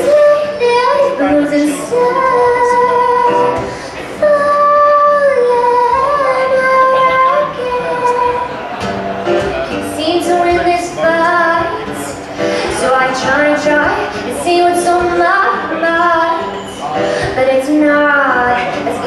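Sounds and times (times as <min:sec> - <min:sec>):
woman singing: 0:00.0 - 0:08.6, 0:09.7 - 0:16.6, 0:17.2 - 0:19.0
acoustic guitar: 0:00.0 - 0:19.0.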